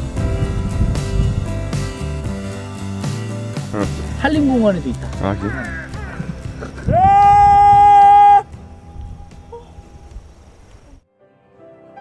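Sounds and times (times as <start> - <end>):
man calling loudly: 3.8 - 8.4.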